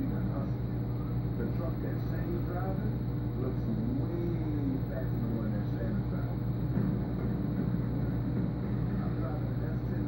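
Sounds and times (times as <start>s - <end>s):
air pump hum with throb: 0.0s - 10.0s
faint indistinct voices: 0.0s - 10.0s.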